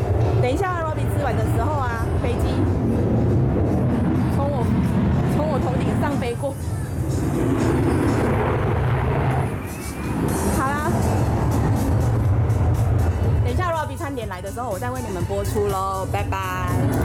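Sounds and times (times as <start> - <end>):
plane flying over: 0.0 - 17.0.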